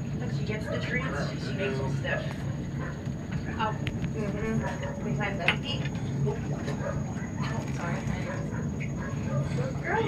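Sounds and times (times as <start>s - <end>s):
treadmill humming: 0.0s - 10.0s
faint voices: 0.1s - 10.0s.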